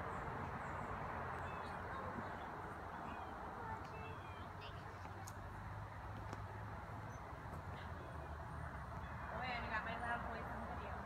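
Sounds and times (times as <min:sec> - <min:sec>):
faint distant voices: 0:00.0 - 0:11.0
faint bird chirps: 0:00.6 - 0:05.3.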